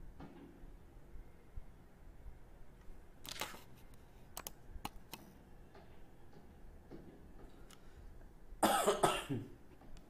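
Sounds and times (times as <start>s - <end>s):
man coughing: 8.6s - 9.6s.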